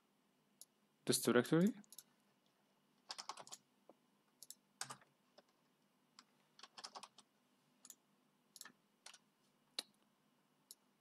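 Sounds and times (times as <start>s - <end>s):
computer keyboard typing: 3.0s - 3.6s, 4.4s - 5.6s, 6.2s - 8.0s.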